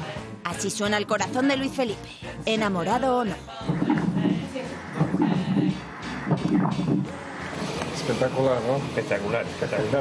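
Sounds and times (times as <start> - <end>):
pulsing doppler heart whoosh: 3.6 - 7.8.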